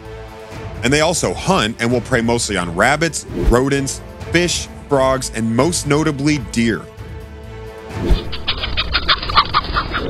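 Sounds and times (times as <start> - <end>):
background music: 0.0 - 10.0
chickens clucking: 8.1 - 10.0.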